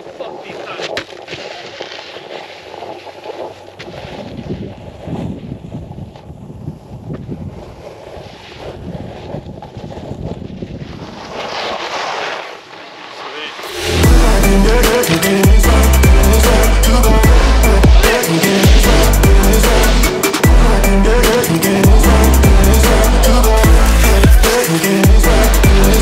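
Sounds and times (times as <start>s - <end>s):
snowboard scraping on snow: 0.0s - 20.4s
wind rushing over microphone: 2.2s - 11.8s.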